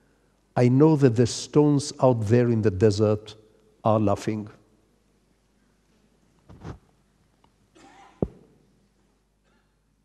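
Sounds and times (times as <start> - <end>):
soft rustle: 5.6 - 7.1.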